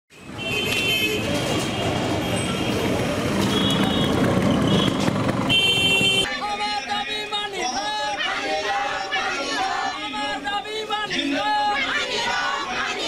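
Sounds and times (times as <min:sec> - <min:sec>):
vehicle horns honking: 0:00.1 - 0:07.3
traffic engines and road noise: 0:00.1 - 0:13.0
crowd voices: 0:06.2 - 0:13.0.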